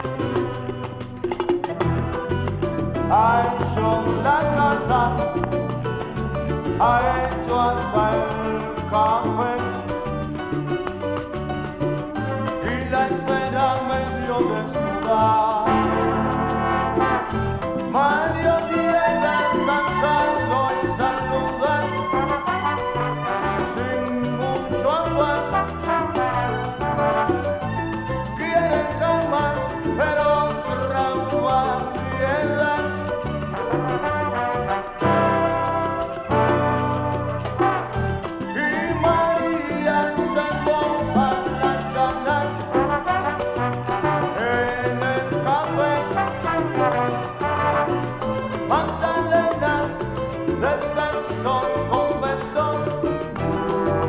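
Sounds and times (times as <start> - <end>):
bass line: 0.0 - 54.0
percussion: 0.0 - 54.0
salsa band music: 0.0 - 54.0
brass section melody: 1.7 - 8.6, 13.6 - 24.6, 25.2 - 29.2, 32.4 - 50.3, 53.1 - 54.0.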